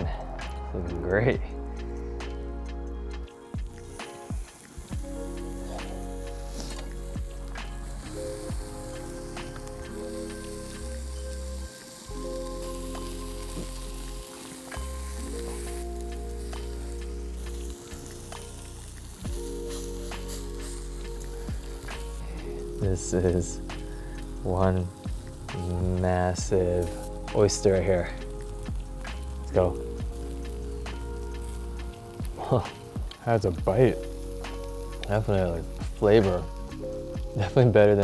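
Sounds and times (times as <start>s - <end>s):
background music with chords: 0.0s - 38.0s
skewers sizzling on a grill: 0.0s - 38.0s.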